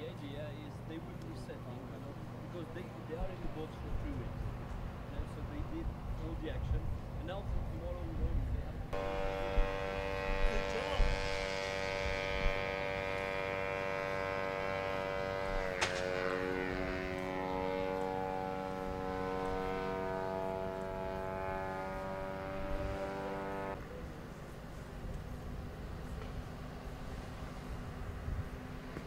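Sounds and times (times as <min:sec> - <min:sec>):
small propeller engine buzzing: 0:00.0 - 0:29.0
sharp crack of launcher: 0:15.6 - 0:16.5.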